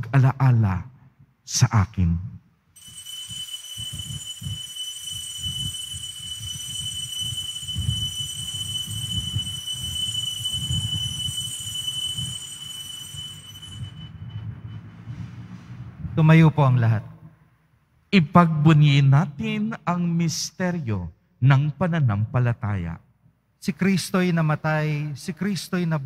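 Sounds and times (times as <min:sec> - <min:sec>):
altar bell ringing: 0:02.8 - 0:14.9
church room rumble: 0:02.9 - 0:16.1.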